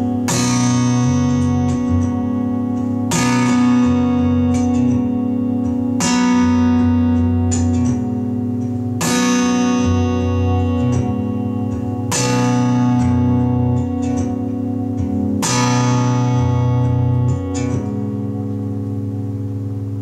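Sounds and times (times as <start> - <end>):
acoustic guitar chords strummed: 0.0 - 20.0
picked guitar notes: 0.0 - 20.0.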